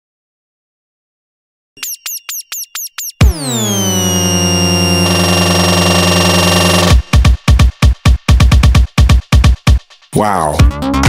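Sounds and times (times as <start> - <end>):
short falling synth zaps: 1.8 - 7.2.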